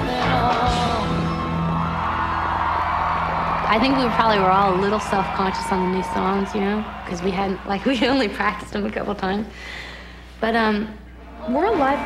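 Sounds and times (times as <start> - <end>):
person singing: 0.0 - 1.6
rock band playing live: 0.0 - 6.4.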